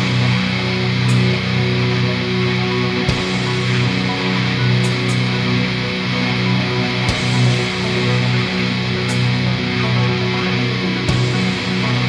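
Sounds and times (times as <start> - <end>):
distorted electric guitar drone chord: 0.0 - 12.0.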